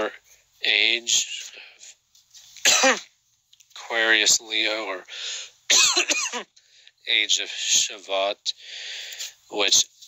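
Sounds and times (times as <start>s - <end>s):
man coughing: 2.6s - 3.1s, 5.7s - 6.5s.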